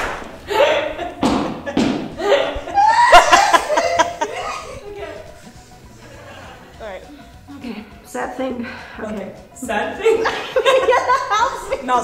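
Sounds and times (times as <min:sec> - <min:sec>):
woman laughing hard: 0:00.4 - 0:05.3, 0:10.1 - 0:11.7.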